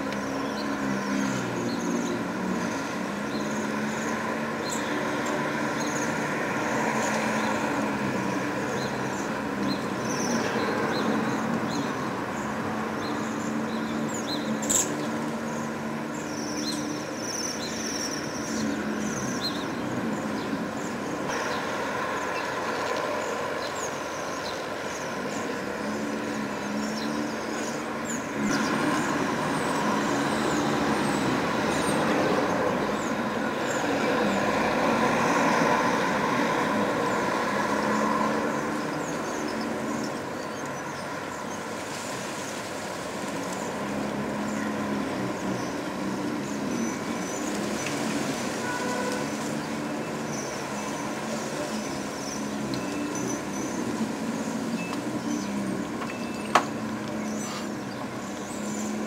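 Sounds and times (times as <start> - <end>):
passing road traffic: 0.0 - 59.0.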